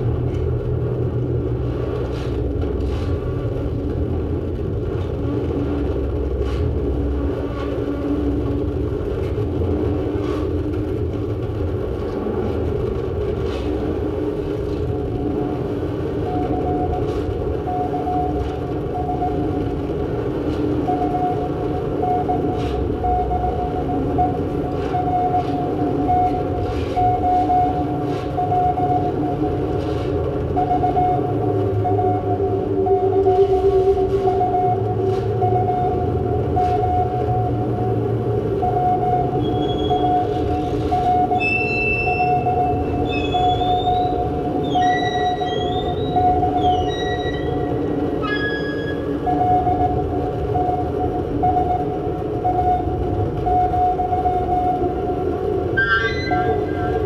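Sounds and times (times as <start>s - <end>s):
rumbling electronic drone: 0.0s - 57.0s
steady pulsing tone: 3.2s - 57.0s.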